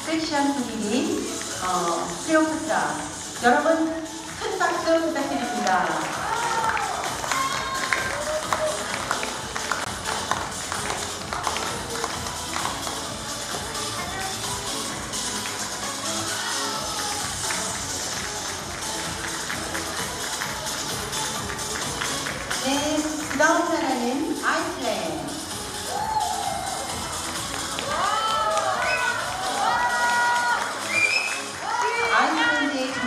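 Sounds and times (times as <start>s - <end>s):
music playing: 0.0s - 33.0s
audience clapping: 5.4s - 14.2s, 14.9s - 16.0s, 17.0s - 23.4s, 27.0s - 32.8s.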